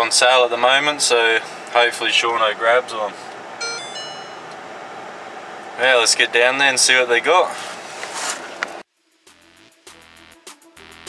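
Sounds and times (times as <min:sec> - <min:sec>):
electronic music with beat: 0:03.6 - 0:04.5.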